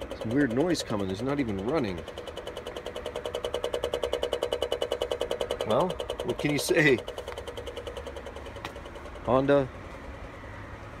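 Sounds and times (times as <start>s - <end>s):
rapid pulsing buzz from car: 0.0s - 11.0s.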